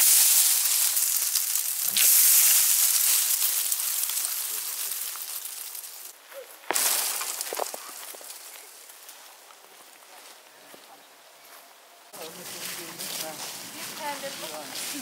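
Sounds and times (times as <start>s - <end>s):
dry leaves rustling and falling: 0.0s - 10.8s, 12.2s - 15.0s.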